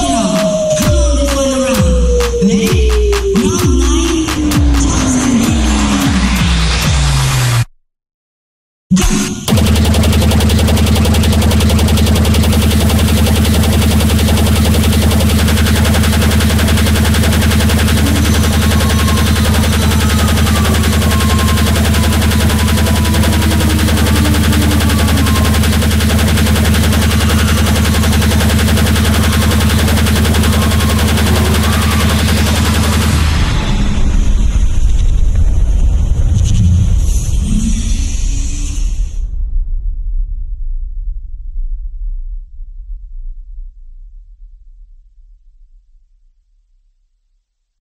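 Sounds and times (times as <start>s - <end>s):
extremely fast electronic kicks: 2.8s - 7.7s, 8.9s - 35.1s
falling pitched sweep: 9.5s - 34.4s.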